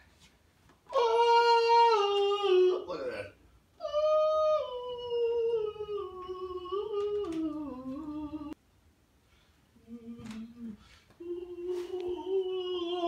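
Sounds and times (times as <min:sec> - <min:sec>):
high voice humming a melody: 0:00.9 - 0:02.9, 0:03.8 - 0:08.6, 0:09.8 - 0:13.0.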